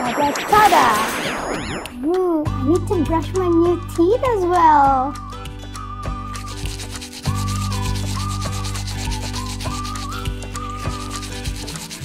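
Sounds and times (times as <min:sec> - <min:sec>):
background music with bass: 0:00.0 - 0:12.0
toothbrush scrubbing: 0:06.3 - 0:12.0.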